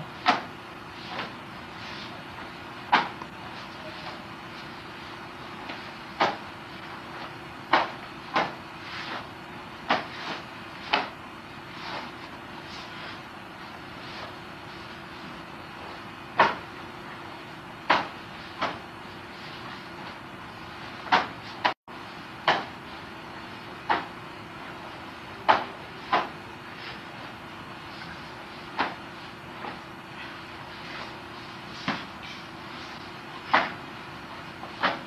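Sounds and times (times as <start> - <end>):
faint steady hum: 0.0 - 35.0
wooden staff swishes: 0.2 - 21.8, 23.5 - 35.0.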